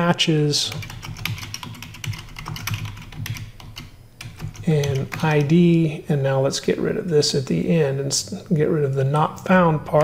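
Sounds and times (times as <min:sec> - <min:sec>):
keyboard typing: 0:00.7 - 0:05.6.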